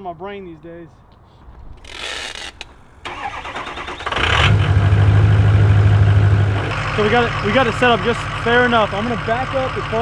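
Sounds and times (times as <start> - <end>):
truck engine starting and idling: 3.0 - 10.0.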